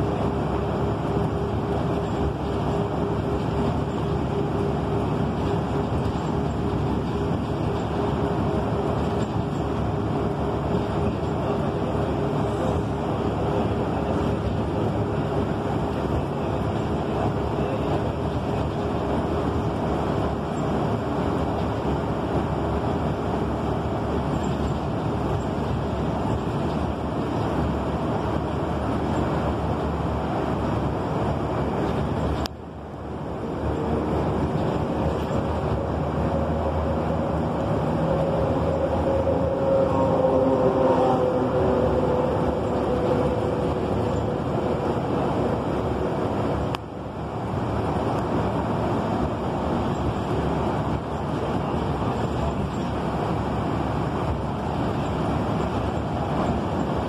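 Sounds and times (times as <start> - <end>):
bus engine and road rumble: 0.0 - 57.0.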